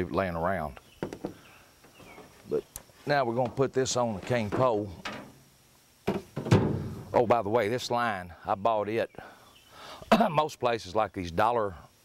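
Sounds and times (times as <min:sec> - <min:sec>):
low thump: 0:06.1 - 0:07.1.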